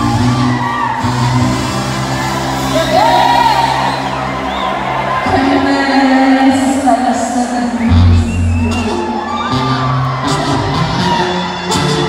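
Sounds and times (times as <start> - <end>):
crowd whooping: 0.0 - 6.5, 7.4 - 12.0
amplified band music: 0.0 - 12.0.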